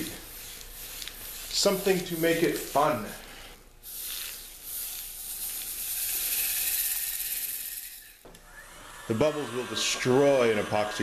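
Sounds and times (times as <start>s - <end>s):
sprinkles pouring from a glass jar: 3.9s - 8.2s.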